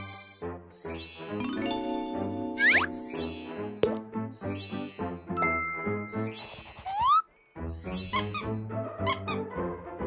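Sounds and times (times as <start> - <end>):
light playful music: 0.0 - 10.0.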